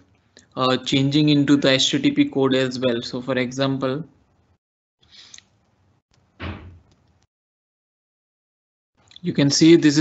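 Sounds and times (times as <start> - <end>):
short thud: 6.4 - 6.8.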